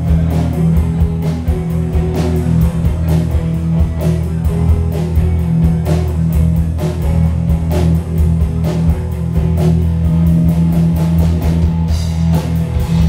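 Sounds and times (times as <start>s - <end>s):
bass guitar: 0.0s - 13.0s
drum kit steady beat: 0.0s - 13.0s
electric guitars: 0.0s - 13.0s.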